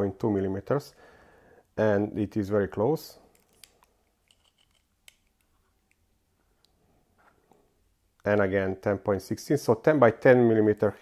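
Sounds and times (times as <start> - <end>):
caliper jaws clicking and scraping: 3.3 - 6.0.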